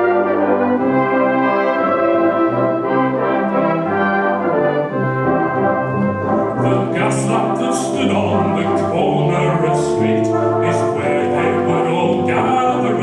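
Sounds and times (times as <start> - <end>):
brass band playing: 0.0 - 13.0.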